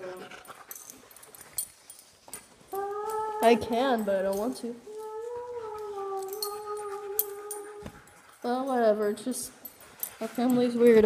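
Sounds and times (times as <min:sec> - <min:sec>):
dog whining: 0:02.7 - 0:08.8.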